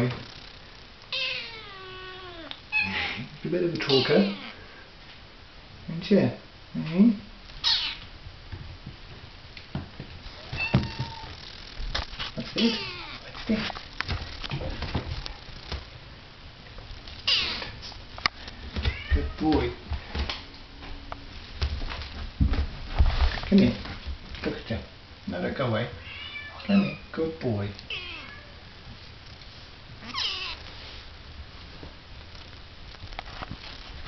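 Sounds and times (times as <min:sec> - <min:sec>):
kitten meowing: 0:01.1 - 0:03.0, 0:03.8 - 0:04.6, 0:07.6 - 0:08.1, 0:10.4 - 0:11.4, 0:12.5 - 0:13.3, 0:17.3 - 0:17.7, 0:18.9 - 0:19.4, 0:26.0 - 0:27.0, 0:27.9 - 0:28.6, 0:30.0 - 0:30.6.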